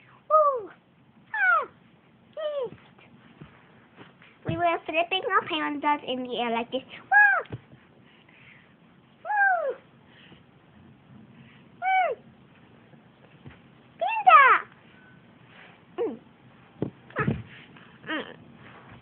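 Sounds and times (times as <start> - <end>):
girl squealing: 1.3 - 1.8, 9.2 - 9.8, 11.8 - 12.2
soft handling bumps: 2.6 - 6.4, 12.5 - 13.9.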